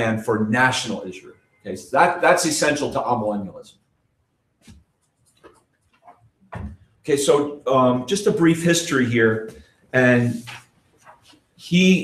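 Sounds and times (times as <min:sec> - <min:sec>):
paper notes rustling: 0:10.2 - 0:11.4.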